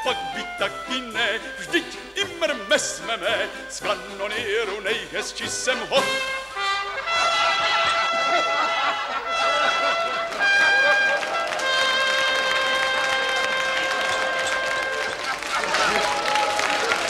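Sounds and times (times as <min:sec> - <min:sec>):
brass holding long notes: 0:03.8 - 0:17.0.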